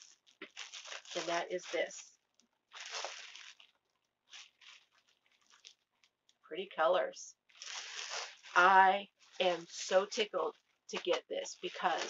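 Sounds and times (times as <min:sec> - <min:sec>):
plastic bag crinkling: 0:00.0 - 0:06.4, 0:07.4 - 0:12.0.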